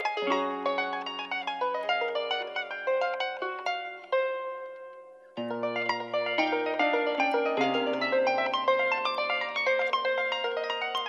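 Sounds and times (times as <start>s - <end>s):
harp plucked notes: 0.0s - 11.0s.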